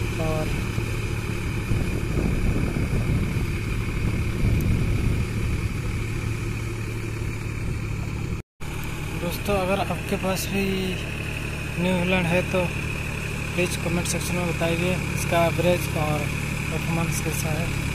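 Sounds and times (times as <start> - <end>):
tractor diesel engine running: 0.0 - 17.9.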